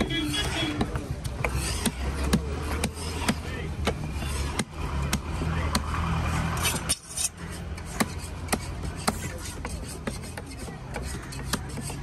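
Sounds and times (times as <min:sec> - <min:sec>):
cleaver chopping on wooden block: 0:00.0 - 0:06.1, 0:07.6 - 0:12.0.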